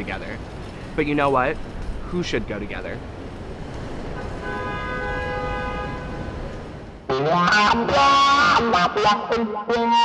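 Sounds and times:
vehicle passing: 0.0 - 8.4
multi-tone horn: 4.2 - 6.5, 7.1 - 10.0.

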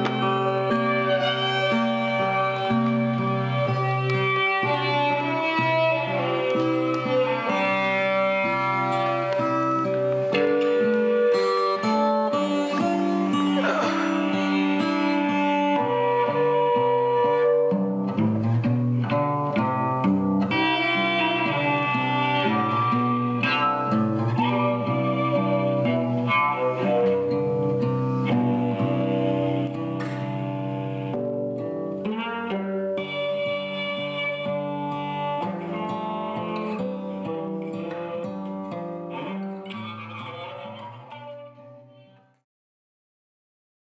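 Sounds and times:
bowed string notes: 0.0 - 42.3
plucked strings: 0.0 - 42.3.

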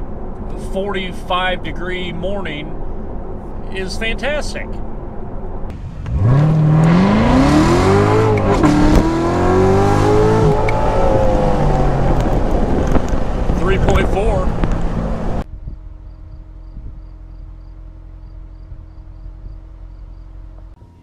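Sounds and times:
car engine accelerating hard: 5.7 - 15.5.

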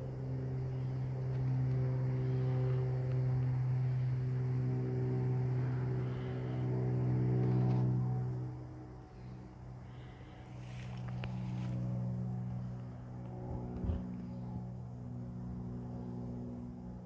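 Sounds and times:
low droning hum: 0.0 - 17.0.

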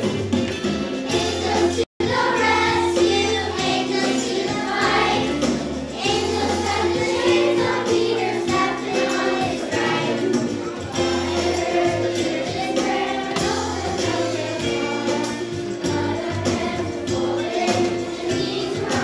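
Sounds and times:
musical accompaniment with bass line: 0.0 - 19.0
children's choir singing: 1.1 - 19.0.

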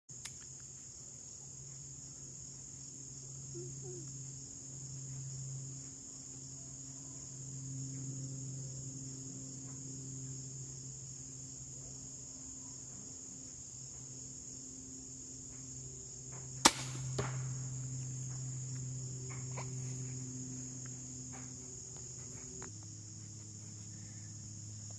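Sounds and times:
crickets trilling: 0.1 - 24.9
crossbow firing snap: 16.6 - 17.5
bolt hitting foam target: 16.7 - 17.4.

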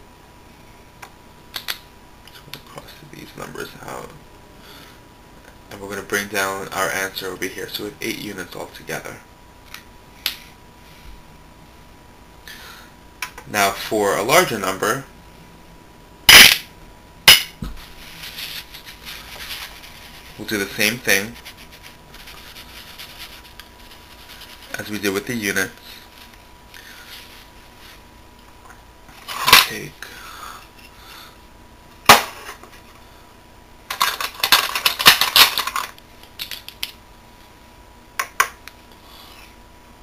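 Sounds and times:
cubes clattering into glass bowl: 33.9 - 36.7.

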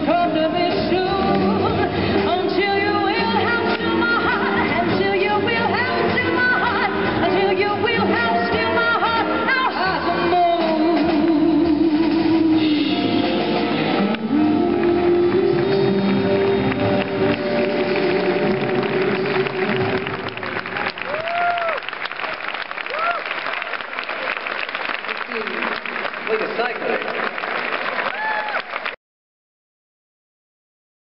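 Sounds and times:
jazz big band chord: 0.1 - 20.6
audience applause: 14.0 - 29.0
crowd whooping: 14.3 - 24.5, 27.9 - 29.0.

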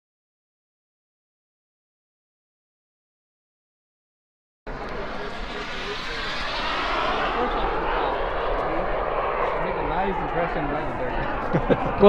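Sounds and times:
model jet turbine running: 4.7 - 12.0.

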